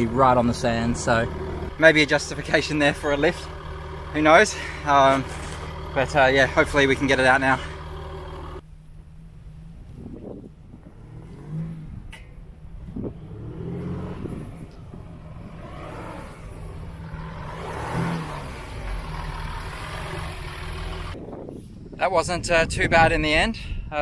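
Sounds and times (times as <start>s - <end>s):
diesel engine revving: 0.0s - 21.2s.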